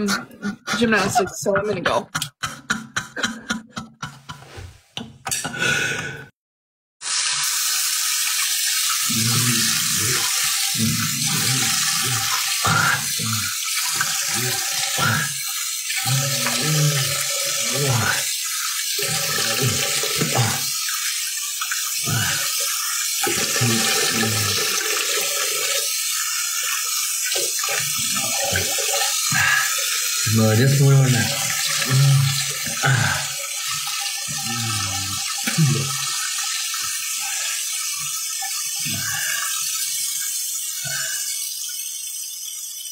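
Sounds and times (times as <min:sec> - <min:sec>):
tap water running into sink: 0:07.0 - 0:42.9
man's wordless vocal sounds: 0:09.1 - 0:15.4, 0:16.0 - 0:18.3, 0:19.0 - 0:20.8, 0:22.0 - 0:22.6, 0:23.3 - 0:24.8, 0:28.0 - 0:33.4, 0:34.3 - 0:36.1, 0:38.8 - 0:39.6.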